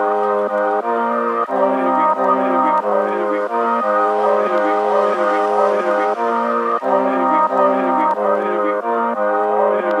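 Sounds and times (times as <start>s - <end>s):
brass-like chords: 0.0s - 10.0s.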